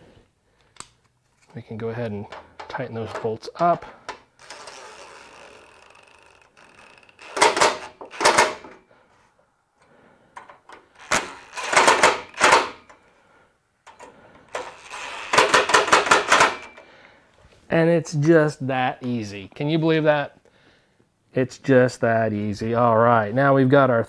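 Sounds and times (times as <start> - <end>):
impact driver rapid clatter: 11.0 - 12.8, 14.6 - 16.8.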